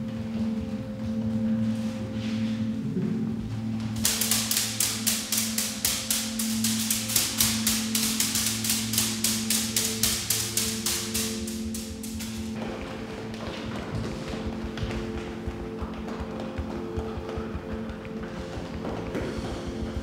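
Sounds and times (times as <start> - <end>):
droning music: 0.0 - 20.0
hands patting backs: 4.0 - 20.0.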